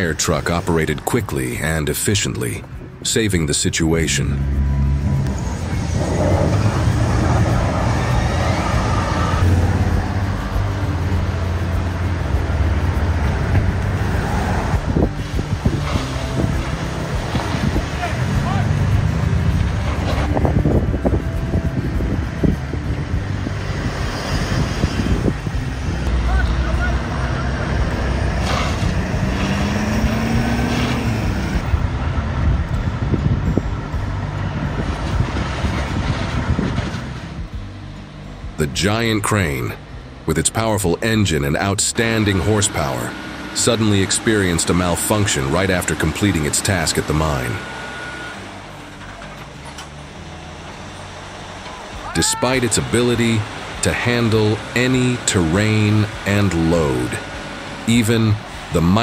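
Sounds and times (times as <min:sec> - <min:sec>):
traffic and engine rumble: 0:00.0 - 0:59.0.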